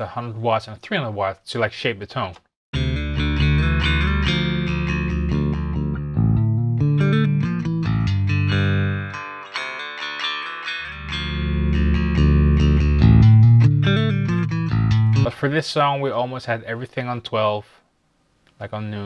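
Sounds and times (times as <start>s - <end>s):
electric bass guitar line: 2.8s - 15.5s.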